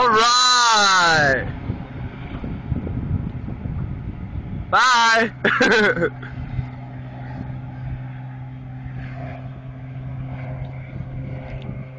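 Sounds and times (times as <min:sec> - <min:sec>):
motorboat engine humming: 0:00.0 - 0:11.9
wind and water rushing: 0:00.0 - 0:11.9.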